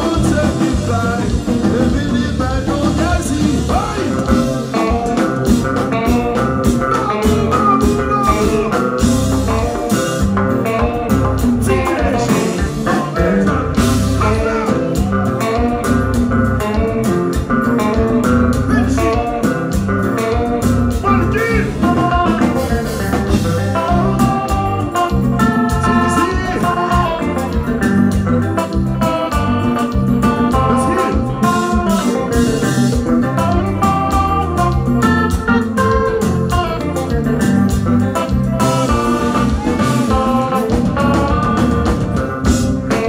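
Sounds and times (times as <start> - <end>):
bass guitar: 0.0 - 43.0
drums with steady beat: 0.0 - 43.0
electric guitar: 0.0 - 43.0
organ-sounding keyboard: 0.0 - 43.0.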